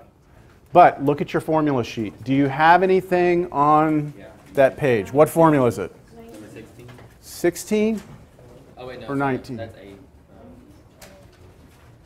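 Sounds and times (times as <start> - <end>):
classroom room hum: 0.0 - 12.0.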